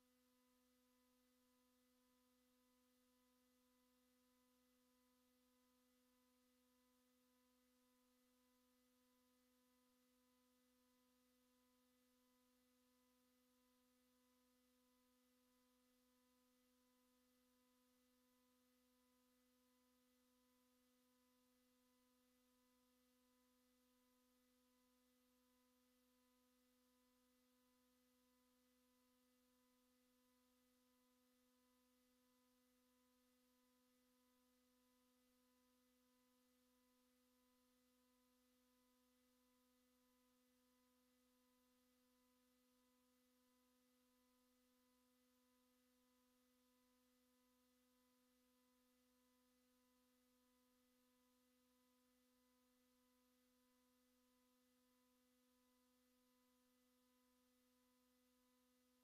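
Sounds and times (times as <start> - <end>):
faint hum of thin tones: 0.0 - 59.0.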